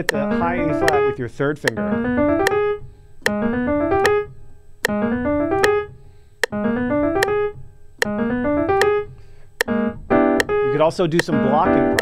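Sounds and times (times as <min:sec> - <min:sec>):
metronome clicking: 0:00.0 - 0:12.0
piano playing fast rising run: 0:00.2 - 0:01.2, 0:01.8 - 0:12.0.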